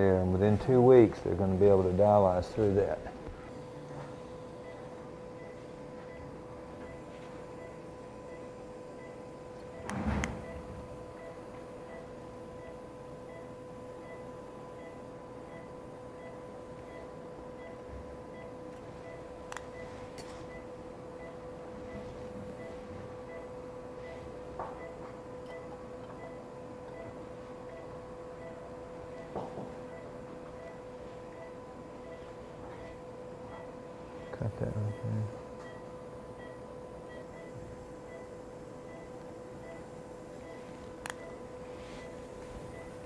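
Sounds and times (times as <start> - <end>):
electrical hum: 0.0 - 43.0.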